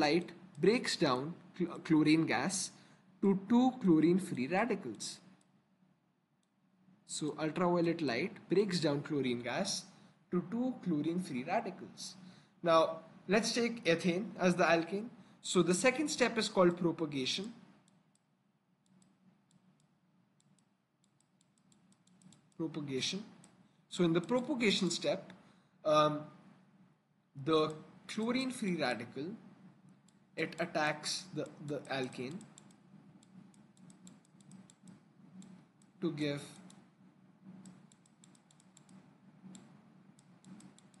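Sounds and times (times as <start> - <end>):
faint low hum: 0.0 - 41.0
faint clicking of input device: 17.4 - 22.6, 23.3 - 23.6, 25.2 - 25.4, 29.8 - 30.7, 31.4 - 36.9, 37.5 - 41.0.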